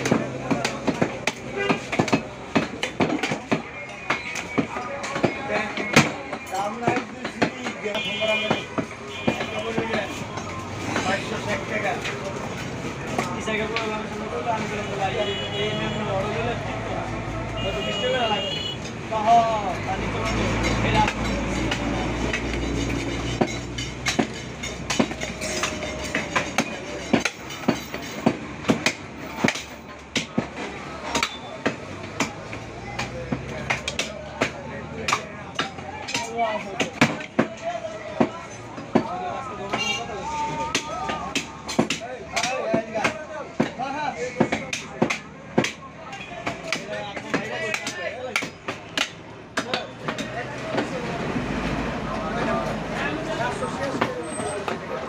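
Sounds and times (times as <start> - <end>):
people talking: 0.0 - 28.3, 29.2 - 55.0.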